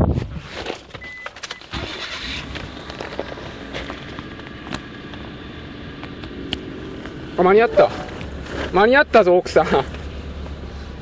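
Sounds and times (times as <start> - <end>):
car engine starting and idling: 0.9 - 11.0.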